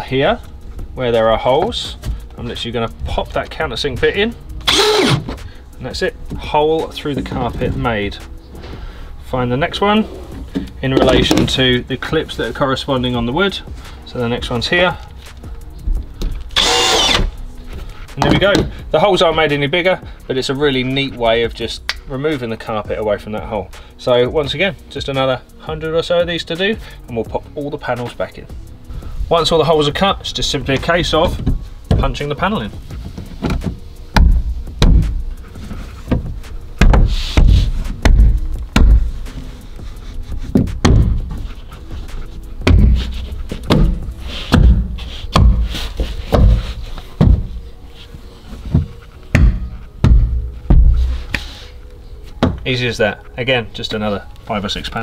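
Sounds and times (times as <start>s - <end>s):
cordless drill whine: 4.7s - 5.2s, 16.6s - 17.3s.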